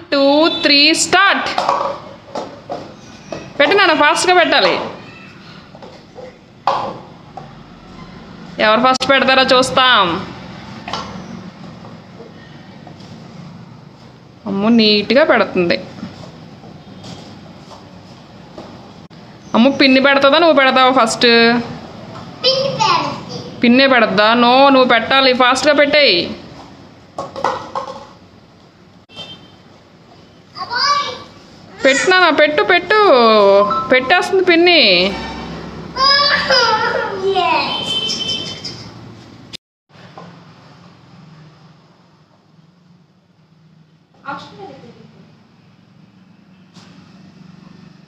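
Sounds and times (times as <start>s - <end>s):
paper cups tapping on stone floor: 26.6s - 28.2s.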